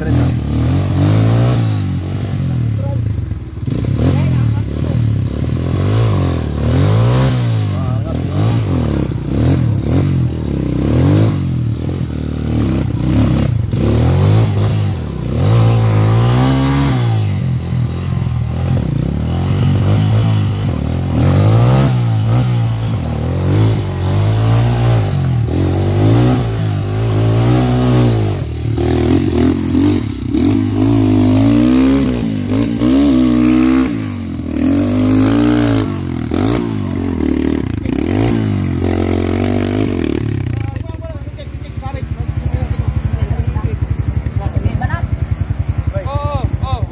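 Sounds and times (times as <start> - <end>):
motorcycle engine revving hard: 0.0 - 46.9.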